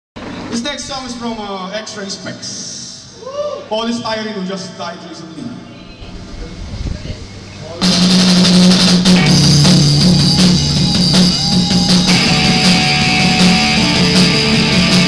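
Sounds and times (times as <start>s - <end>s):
room noise: 3.3s - 15.0s
low repeated bass notes: 6.0s - 15.0s
drum kit: 7.7s - 15.0s
electric guitar: 7.8s - 15.0s
live rock band playing: 7.8s - 15.0s.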